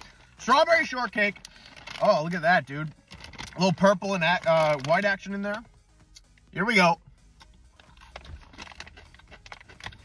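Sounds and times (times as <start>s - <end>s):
crunchy chewing: 7.7s - 10.0s.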